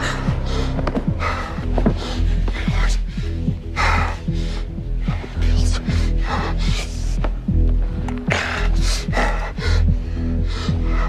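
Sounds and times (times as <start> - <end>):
tense film score: 0.0 - 11.0.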